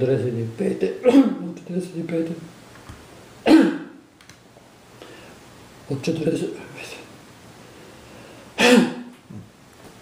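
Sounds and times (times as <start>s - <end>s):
man speaking: 0.0s - 2.5s, 5.9s - 7.1s
man clearing his throat: 1.0s - 1.5s, 3.5s - 4.0s, 8.6s - 9.5s.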